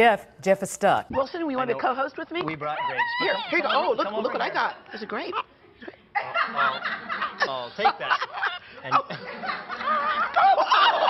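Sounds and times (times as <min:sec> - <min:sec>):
woman shrieking: 0:02.7 - 0:03.6.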